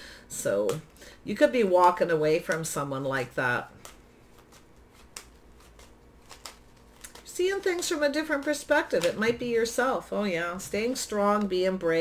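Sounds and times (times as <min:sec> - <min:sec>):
low steady hum: 0:00.0 - 0:12.0
handling of cards: 0:03.7 - 0:09.8.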